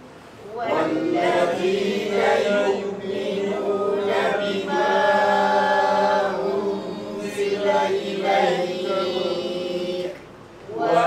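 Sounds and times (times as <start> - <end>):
melodic chanted recitation: 0.4 - 11.0.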